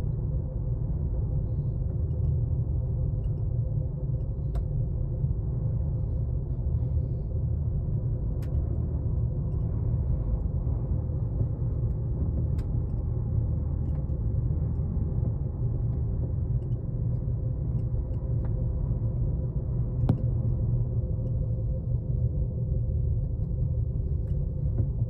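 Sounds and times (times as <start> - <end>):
faint steady hum: 0.0 - 25.0
gondola cabin low rumble: 0.0 - 25.0.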